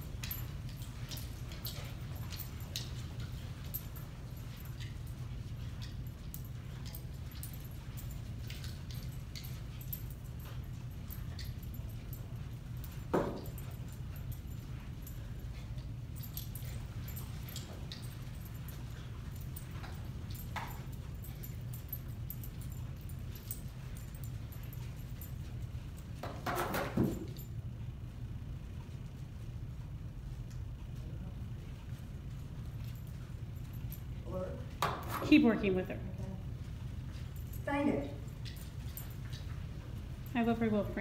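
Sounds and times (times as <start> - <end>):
steady low hum: 0.0 - 41.0
high jingle: 16.2 - 25.6.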